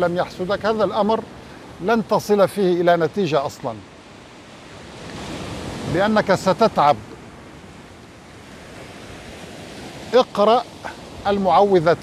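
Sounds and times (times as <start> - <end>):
waves breaking on sandy shore: 0.0 - 12.0.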